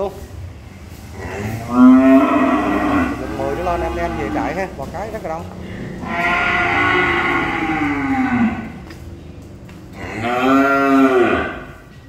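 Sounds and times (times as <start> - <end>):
cattle mooing: 1.1 - 9.0, 9.9 - 11.9.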